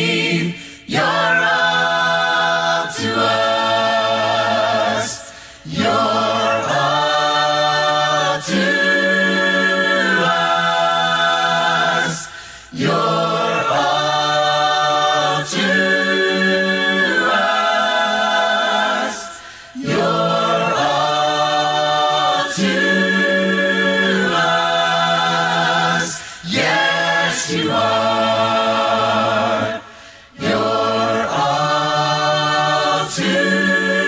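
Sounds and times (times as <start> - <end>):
congregation singing a hymn: 0.0 - 34.0.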